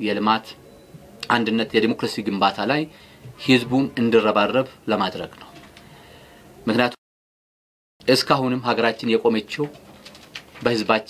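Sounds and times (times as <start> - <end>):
man speaking into microphones: 1.2 - 5.5, 8.1 - 9.8, 10.6 - 11.0.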